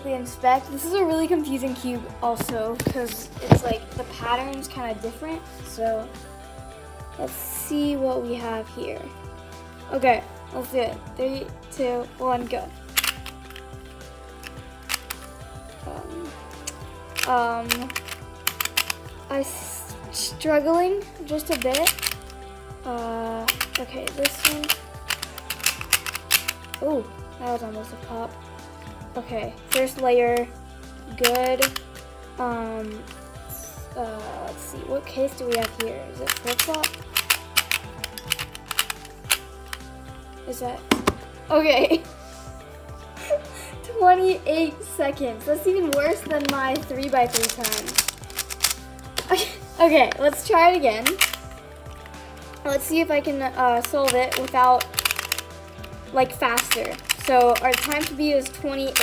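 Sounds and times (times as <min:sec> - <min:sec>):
background music with beat: 0:00.0 - 0:59.0
plastic puzzle clicks: 0:12.9 - 0:13.7, 0:14.4 - 0:15.3, 0:16.6 - 0:19.2, 0:21.4 - 0:22.3, 0:23.4 - 0:26.8, 0:31.2 - 0:32.0, 0:35.4 - 0:39.8, 0:45.8 - 0:49.4, 0:51.0 - 0:52.7, 0:53.7 - 0:59.0.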